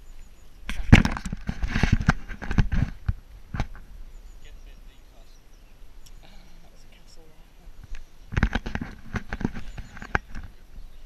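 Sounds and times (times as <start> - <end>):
camera handling knocks and rubbing: 0.7 - 3.8, 7.8 - 10.6.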